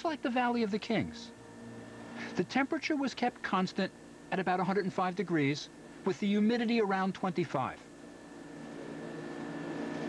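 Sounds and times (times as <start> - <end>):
steady hum of held tones: 0.0 - 10.0.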